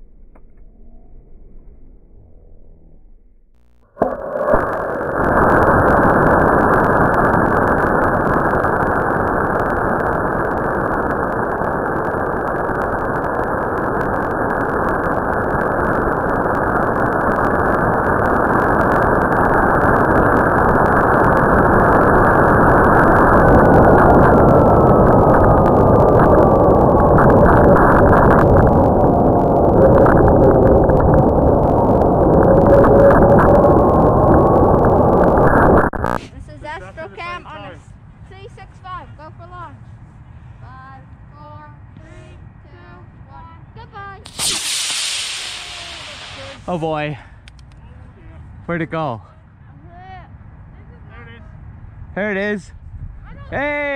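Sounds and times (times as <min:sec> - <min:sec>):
rocket motor roar: 0:03.8 - 0:36.2, 0:44.2 - 0:47.5
falling whistle: 0:44.3 - 0:46.8.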